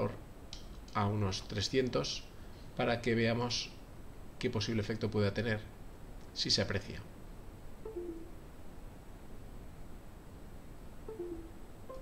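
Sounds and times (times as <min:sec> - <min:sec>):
faint room noise: 0:00.0 - 0:12.0
two-note falling electronic chime: 0:07.9 - 0:08.4, 0:11.1 - 0:12.0.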